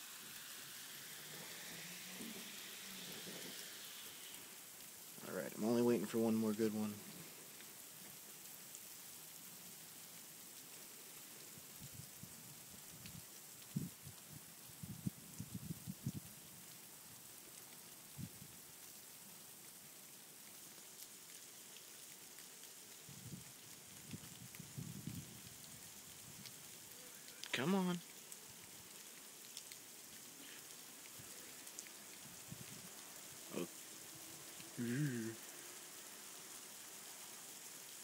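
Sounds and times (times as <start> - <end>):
freezing rain hissing: 0.0 - 38.0.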